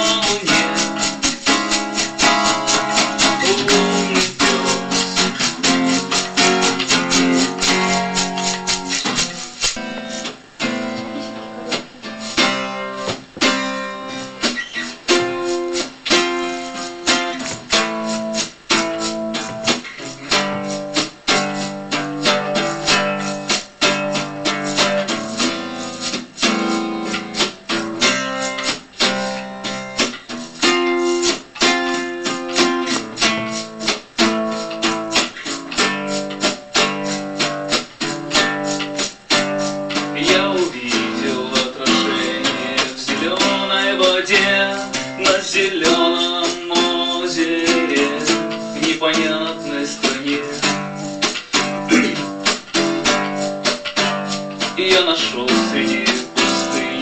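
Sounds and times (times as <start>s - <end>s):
person singing: 0.0s - 9.4s, 10.0s - 12.8s, 39.8s - 53.4s, 54.6s - 57.0s
acoustic guitar strumming: 0.0s - 57.0s.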